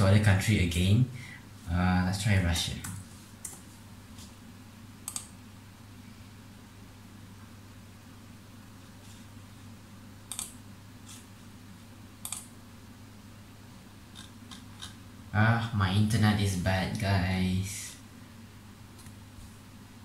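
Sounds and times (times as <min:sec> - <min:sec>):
keyboard and mouse clicks: 0:05.0 - 0:05.3, 0:10.3 - 0:10.6, 0:12.2 - 0:12.5, 0:14.1 - 0:15.0.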